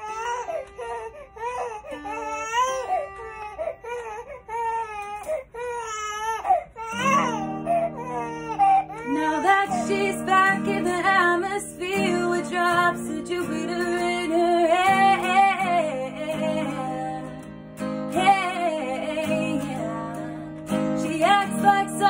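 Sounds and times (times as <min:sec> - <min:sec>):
infant crying: 0:00.0 - 0:10.7
acoustic guitar strumming: 0:06.9 - 0:22.0.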